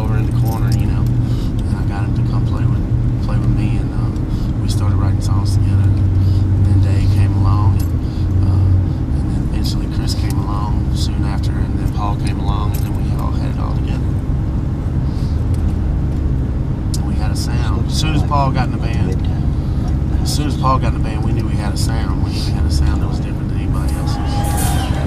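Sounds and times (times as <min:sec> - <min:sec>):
people talking: 0:00.0 - 0:14.1, 0:16.9 - 0:25.0
vehicle engine and road rumble: 0:00.0 - 0:25.0.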